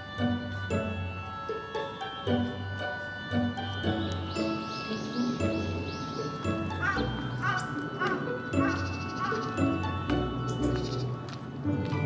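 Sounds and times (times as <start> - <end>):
melody of short notes: 0.0 - 12.0.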